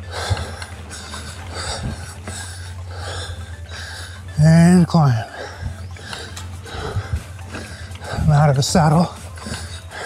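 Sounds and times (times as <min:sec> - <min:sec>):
bike tyres rolling on dirt trail: 0:00.0 - 0:10.0
rider breathing: 0:00.0 - 0:10.0.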